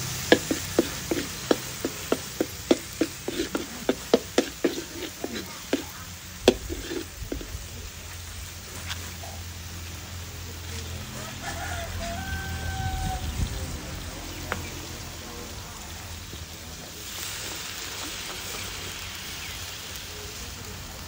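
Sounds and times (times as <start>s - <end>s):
sauce sizzling in a wok: 0.0s - 21.0s
rooster crowing: 11.0s - 13.8s.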